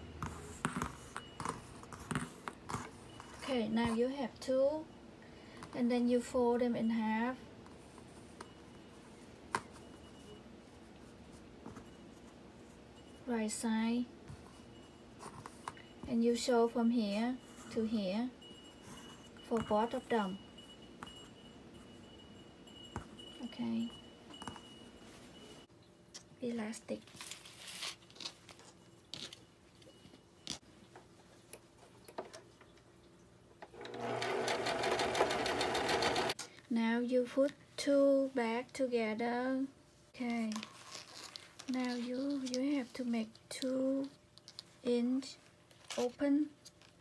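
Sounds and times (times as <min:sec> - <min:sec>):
sewing machine stitching: 0:33.6 - 0:36.4.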